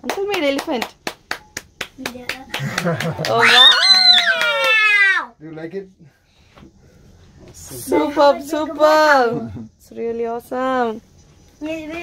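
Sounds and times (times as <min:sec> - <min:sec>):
people clapping: 0:00.0 - 0:05.2.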